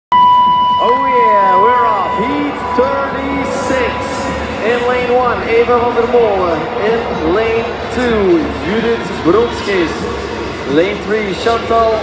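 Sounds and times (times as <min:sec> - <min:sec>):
steady high-pitched tone: 0:00.1 - 0:08.8
announcer over public address: 0:00.6 - 0:08.8.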